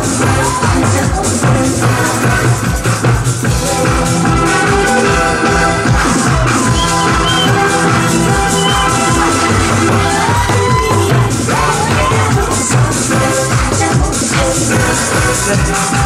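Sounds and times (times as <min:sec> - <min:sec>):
electronic dance beat: 0:00.0 - 0:16.0.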